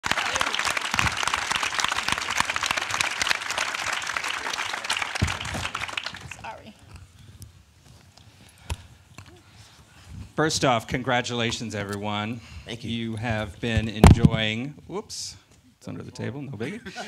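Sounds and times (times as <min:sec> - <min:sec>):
audience applauding: 0:00.0 - 0:06.5.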